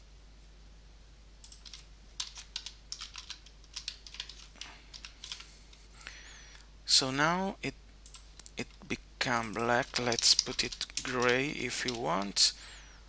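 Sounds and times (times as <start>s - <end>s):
typing on a computer keyboard: 1.4s - 5.5s, 9.4s - 12.4s.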